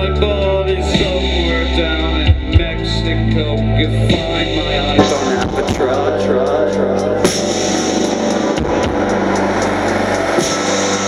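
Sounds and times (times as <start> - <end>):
live band playing: 0.0 - 11.0.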